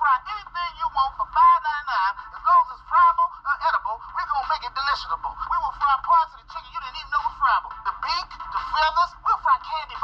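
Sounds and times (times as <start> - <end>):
steady low hum: 0.0 - 10.0
tinny voices from laptop speaker: 0.0 - 10.0.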